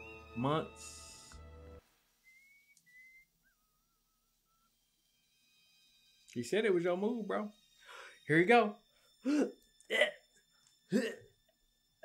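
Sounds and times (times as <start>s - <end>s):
faint wavering whistling: 2.2s - 12.0s.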